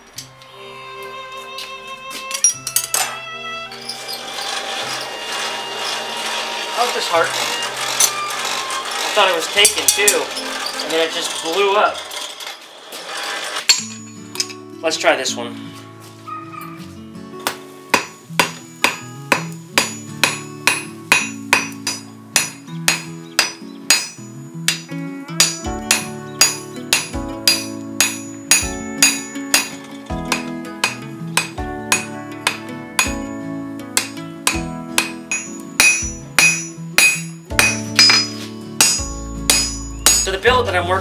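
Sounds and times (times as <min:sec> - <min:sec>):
plucked guitar music: 0:00.0 - 0:04.0, 0:13.8 - 0:41.0
anvil ringing: 0:09.0 - 0:12.3, 0:13.7 - 0:14.6, 0:18.0 - 0:33.4, 0:34.0 - 0:40.5
hammer striking steel on anvil: 0:13.7 - 0:14.6, 0:17.4 - 0:33.3, 0:34.0 - 0:40.5.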